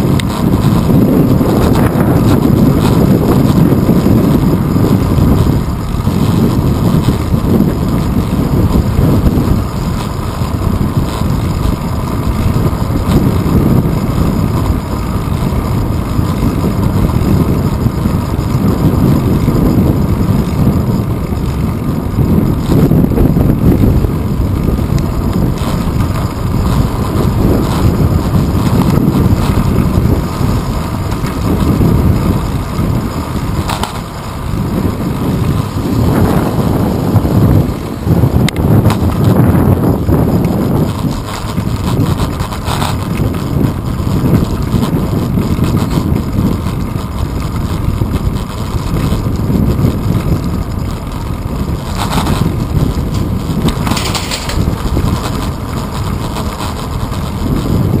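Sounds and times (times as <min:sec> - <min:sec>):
bike rumbling over road: 0:00.0 - 0:58.0
wind buffeting microphone: 0:00.0 - 0:58.0.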